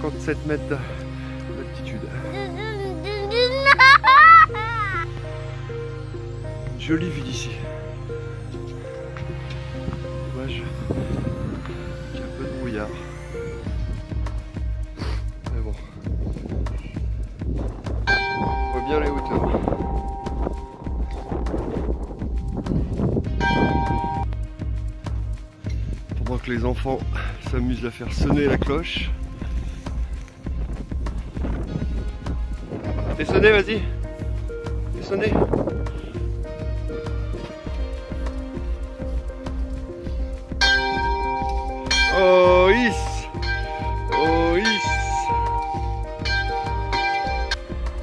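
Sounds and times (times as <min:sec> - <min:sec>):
background music with bass beat: 0:00.0 - 0:48.0
low rumble: 0:07.6 - 0:26.4
hand bell ringing: 0:18.1 - 0:21.7, 0:40.6 - 0:47.6.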